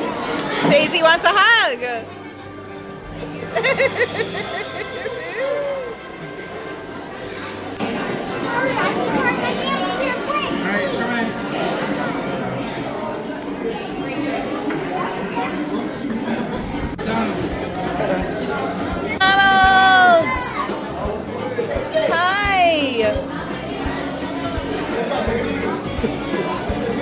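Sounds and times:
overlapping chatter: 0:00.0 - 0:27.0
children's voices: 0:07.2 - 0:11.2, 0:19.1 - 0:21.0.

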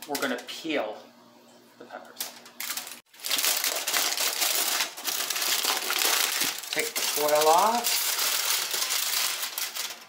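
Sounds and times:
aluminium foil crinkling: 0:02.1 - 0:10.0.

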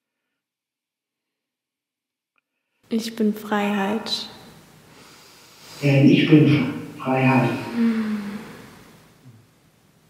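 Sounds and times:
woman humming: 0:07.6 - 0:08.7.

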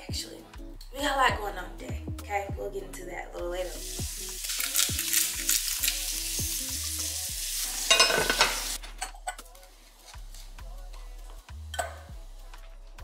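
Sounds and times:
eggs sizzling in a pan: 0:03.6 - 0:10.5.

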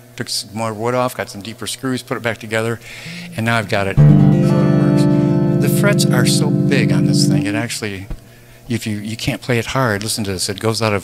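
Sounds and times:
electric guitar chord ringing: 0:03.0 - 0:08.0.

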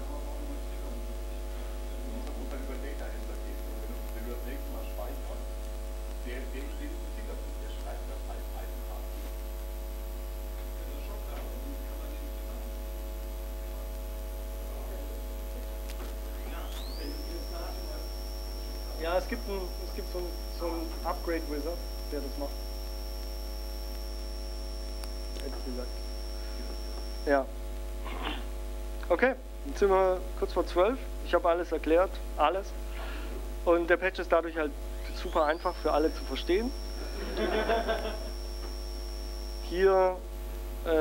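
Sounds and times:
electrical mains hum: 0:00.0 - 0:41.0.

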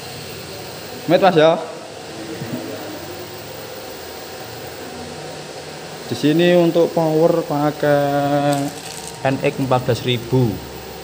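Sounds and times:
fan whirring: 0:00.0 - 0:11.0.

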